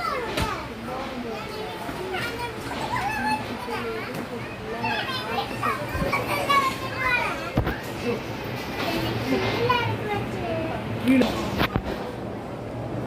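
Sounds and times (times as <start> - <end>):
children chattering: 0.0 - 12.4.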